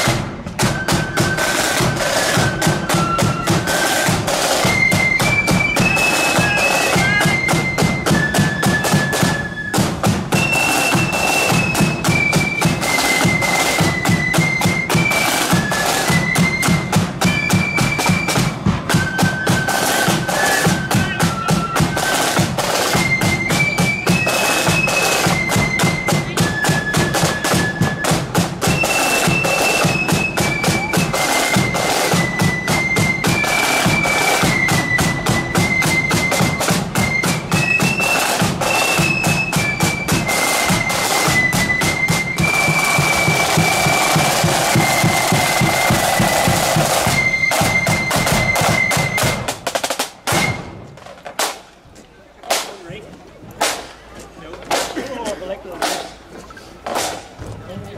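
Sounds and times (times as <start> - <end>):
high flute melody: 0.0 - 51.0
cymbals: 0.0 - 51.7
rapid snare drumming: 0.0 - 51.7, 52.4 - 53.0, 53.6 - 54.0, 54.7 - 55.1, 55.8 - 57.4.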